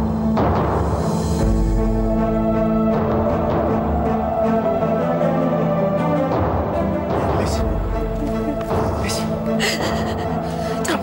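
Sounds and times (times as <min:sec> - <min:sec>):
dramatic music score: 0:00.0 - 0:11.0
woman sobbing and gasping: 0:08.0 - 0:11.0.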